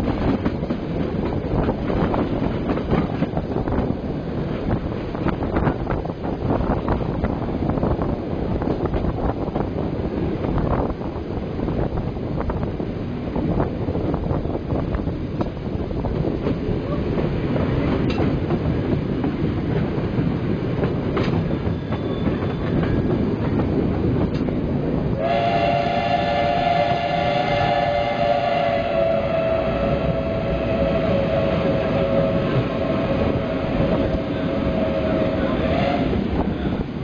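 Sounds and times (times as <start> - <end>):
passenger train rumbling: 0.0 - 37.0
wheels clicking over rail joints: 15.4 - 24.8.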